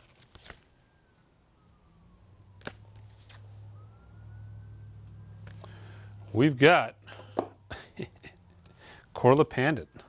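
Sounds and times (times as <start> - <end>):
wailing siren: 0.0 - 10.0
low hum: 1.0 - 9.0.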